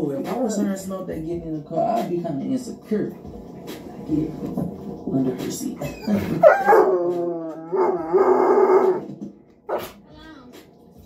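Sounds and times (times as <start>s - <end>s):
dog howling: 5.8s - 9.9s.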